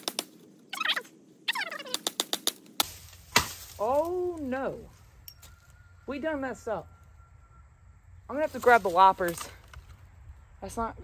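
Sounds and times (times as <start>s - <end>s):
bamboo cane cracking: 1.9s - 4.5s, 8.5s - 10.1s.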